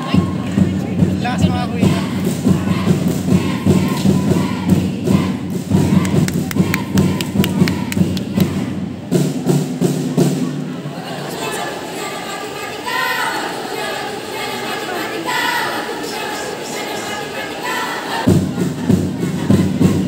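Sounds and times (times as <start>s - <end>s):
thumping beat: 0.2s - 9.6s
group chanting in unison: 1.8s - 8.9s, 11.0s - 20.0s.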